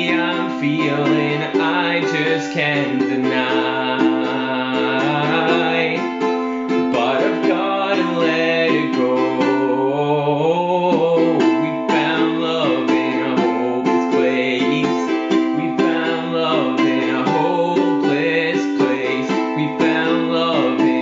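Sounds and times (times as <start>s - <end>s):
ukulele strumming: 0.0s - 9.9s, 10.9s - 21.0s
man singing: 0.0s - 21.0s.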